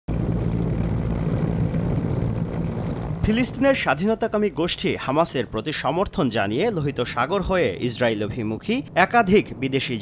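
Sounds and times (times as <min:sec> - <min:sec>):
engine drone: 0:00.1 - 0:03.8
rushing noise: 0:00.1 - 0:05.8.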